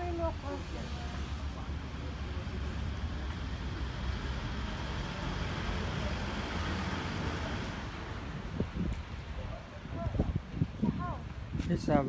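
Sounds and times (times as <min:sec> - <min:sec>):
road traffic rumble: 0:00.0 - 0:12.0
car passing by: 0:00.5 - 0:08.7.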